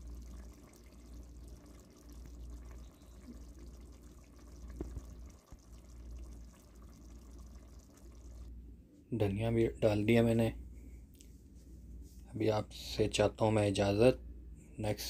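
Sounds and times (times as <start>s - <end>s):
curry bubbling in a pot: 0.0s - 8.5s.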